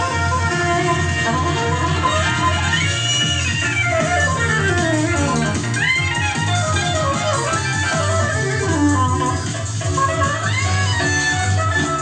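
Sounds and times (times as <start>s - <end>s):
keyboard accompaniment: 0.0s - 12.0s
soprano saxophone improvising: 0.0s - 12.0s.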